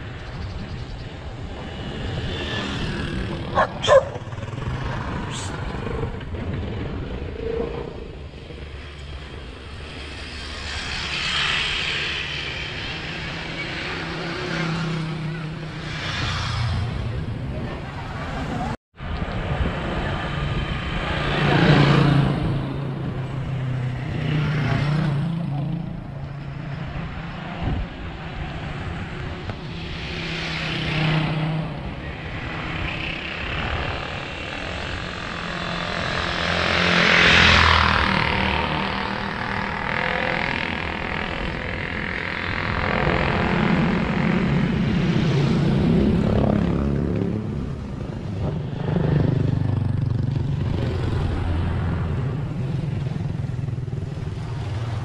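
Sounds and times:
motorcycle engines passing: 0.0 - 55.0.

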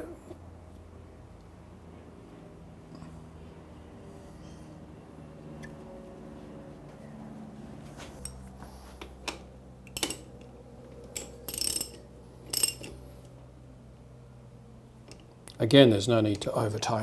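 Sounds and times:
ratchet wrench clicking: 11.2 - 13.0.

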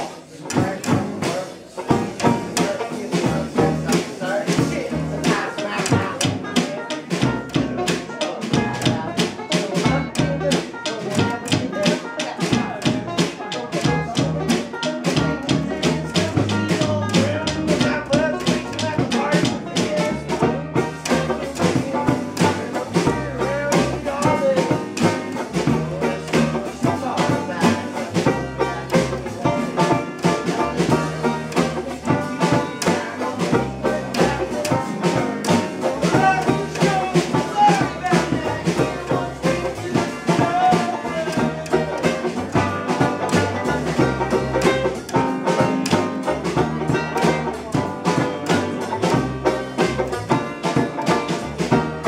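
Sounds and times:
banjo picked quickly: 0.0 - 52.0
plucked double bass: 0.0 - 52.0.

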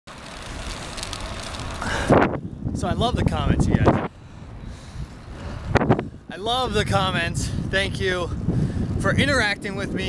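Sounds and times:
bike tyres rolling on pavement: 0.1 - 10.0
wind rushing over microphone: 0.5 - 10.0.

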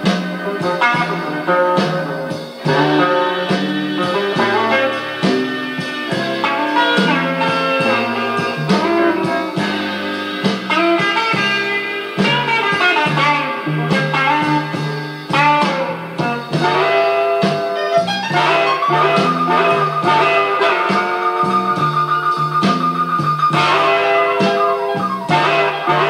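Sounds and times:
blues band playing: 0.0 - 26.0.

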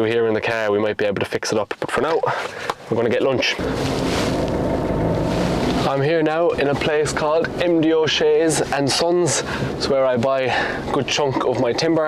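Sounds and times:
car engine and road noise: 3.4 - 11.3.

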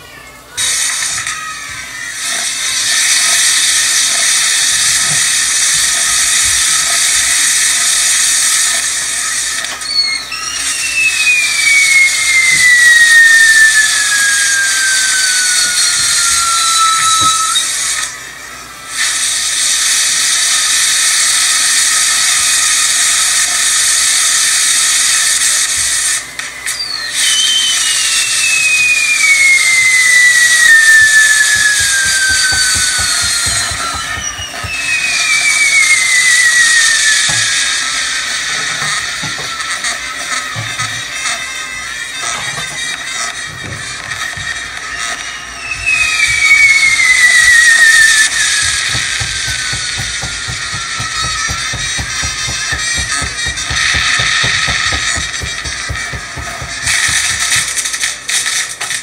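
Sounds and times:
fireworks sparks hissing: 0.5 - 59.0
firework whistles sliding down: 0.6 - 59.0.

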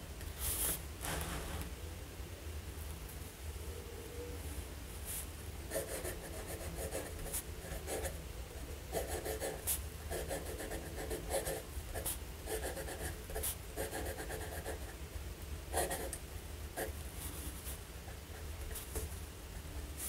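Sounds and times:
fountain pen scratching on paper: 8.9 - 14.8.

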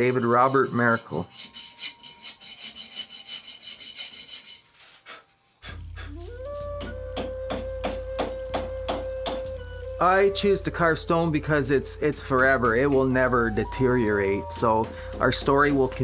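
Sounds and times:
rasp scraping stone: 0.0 - 4.7
low drone music: 5.6 - 16.0.

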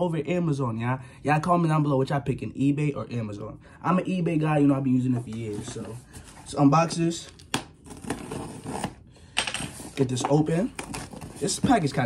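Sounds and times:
cardboard box rustling and scraping: 5.2 - 7.0, 7.9 - 9.0, 9.6 - 12.0.

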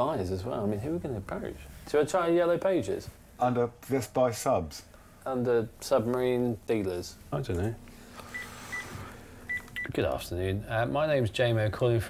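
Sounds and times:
phone keypad beeps: 9.5 - 9.9.

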